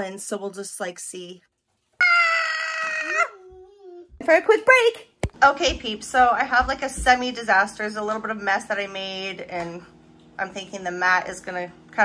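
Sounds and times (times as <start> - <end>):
toddler squealing: 2.0 - 4.0.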